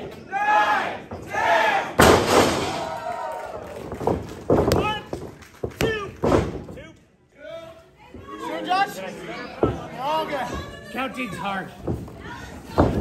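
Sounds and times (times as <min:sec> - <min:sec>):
crowd shouting: 0:00.3 - 0:02.0.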